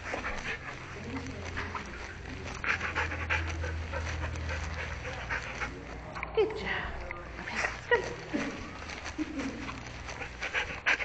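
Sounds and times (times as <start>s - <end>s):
dog panting: 0.0s - 6.3s, 7.4s - 11.0s.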